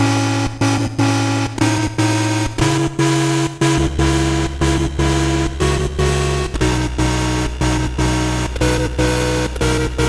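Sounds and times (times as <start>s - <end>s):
buzzy synthesizer repeated notes: 0.0s - 10.0s.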